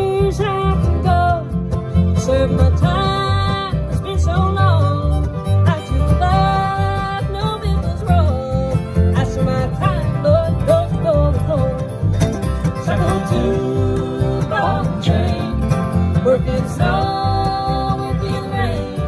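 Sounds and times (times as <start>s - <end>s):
acoustic guitars: 0.0s - 19.0s
mandolin: 0.0s - 19.0s
sliding fiddle melody: 0.0s - 19.0s
upright bass: 0.0s - 19.0s.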